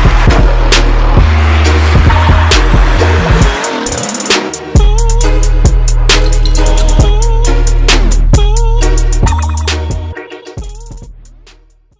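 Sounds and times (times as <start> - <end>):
hip-hop backing track: 0.0 - 11.9.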